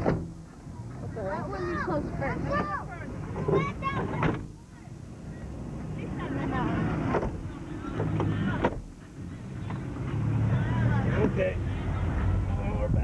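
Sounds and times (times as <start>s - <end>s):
van door pulled shut: 0.0s - 0.3s
van engine idling: 0.0s - 13.0s.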